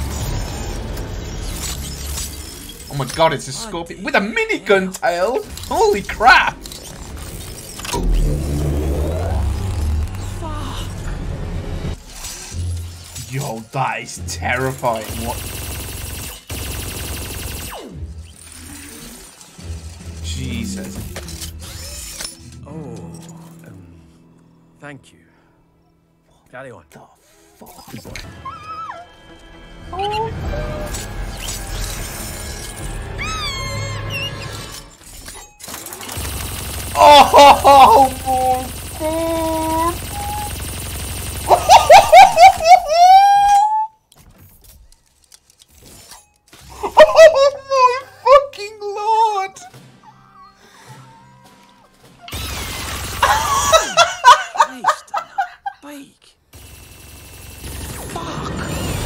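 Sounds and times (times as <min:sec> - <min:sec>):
whirring servos: 0:00.0 - 0:03.4, 0:04.9 - 0:10.4, 0:17.6 - 0:22.6, 0:30.5 - 0:37.0, 0:52.2 - 0:53.8
deep mechanical rumble: 0:07.7 - 0:12.0
low steady score drone: 0:07.8 - 0:12.0
rat squealing scream: 0:28.0 - 0:29.1, 0:30.0 - 0:35.0, 0:37.0 - 0:40.7, 0:41.4 - 0:43.9.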